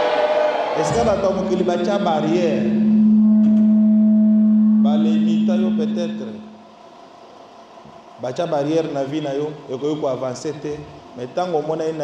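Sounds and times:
low electronic tone: 0.9 - 6.8.

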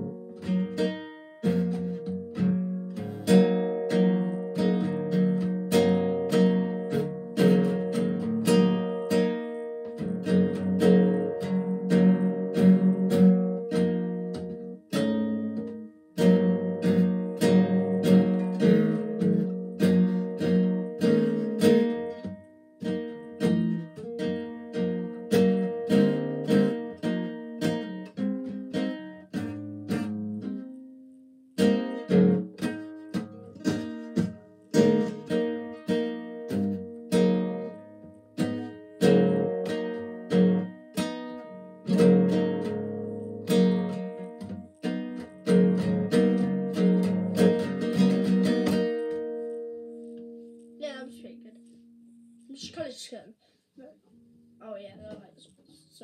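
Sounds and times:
classical guitar strumming chords: 0.0 - 56.0.

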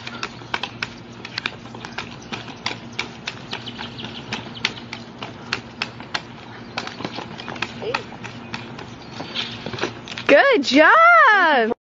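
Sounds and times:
sharp clicks and taps from bike: 0.0 - 8.7.

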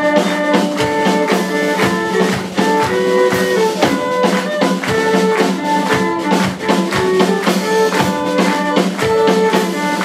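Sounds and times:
bass guitar: 0.0 - 10.0
cello: 0.0 - 10.0
drum kit steady beat: 0.0 - 10.0
fiddle: 0.0 - 10.0.

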